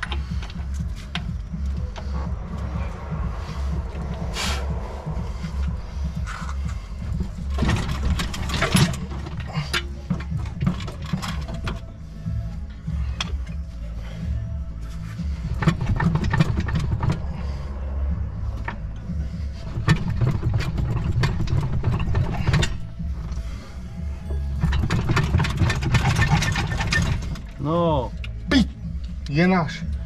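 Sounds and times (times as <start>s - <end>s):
metallic clicks and knocks: 0.0s - 2.7s, 5.6s - 11.9s, 15.5s - 17.4s, 19.7s - 23.4s, 24.5s - 27.6s
background music with heavy bass: 0.0s - 30.0s.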